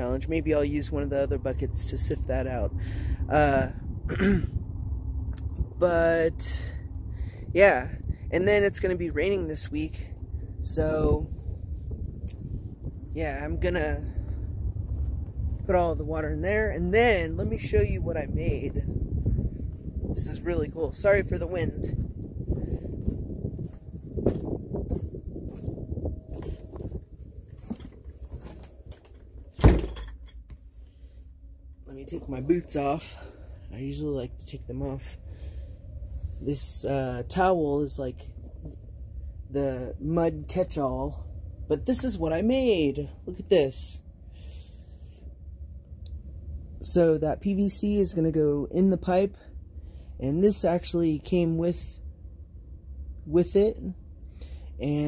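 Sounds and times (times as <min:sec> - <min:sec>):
wind rumble on microphone: 0:00.0 - 0:55.0
man clearing his throat: 0:04.0 - 0:04.6
person speaking: 0:13.1 - 0:14.3, 0:15.6 - 0:19.0, 0:20.0 - 0:22.1, 0:31.8 - 0:35.2
microphone handling noise: 0:17.5 - 0:29.7
door shutting thump: 0:29.6 - 0:30.1.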